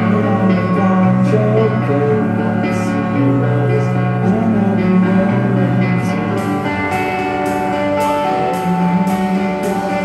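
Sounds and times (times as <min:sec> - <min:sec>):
guitars: 0:00.0 - 0:10.0
live rock band playing: 0:00.0 - 0:10.0.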